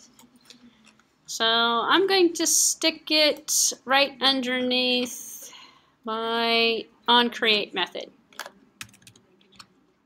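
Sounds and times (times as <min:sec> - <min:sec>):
computer keyboard keystrokes: 0:08.4 - 0:09.7.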